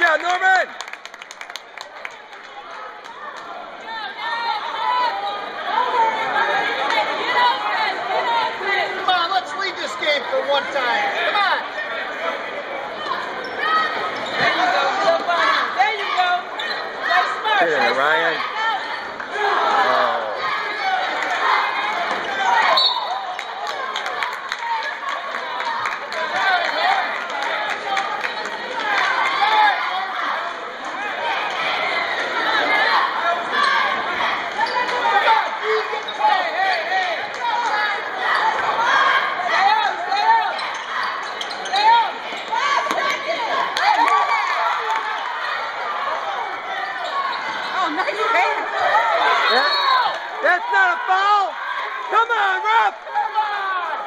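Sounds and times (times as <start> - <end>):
spectators voices and shouts: 1.8 - 54.0.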